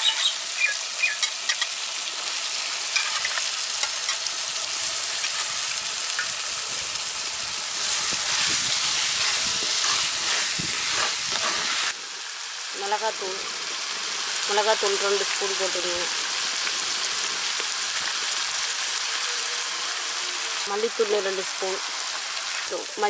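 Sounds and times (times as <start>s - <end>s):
food sizzling in oil: 0.0s - 23.0s.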